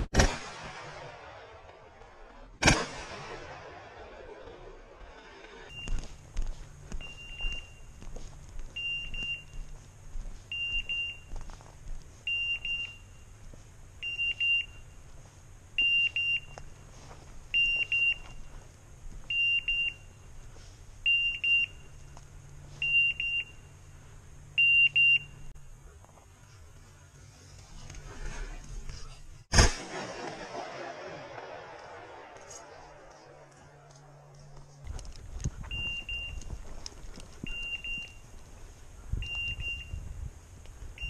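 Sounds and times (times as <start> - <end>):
footsteps: 4.4 - 23.1, 31.4 - 39.5.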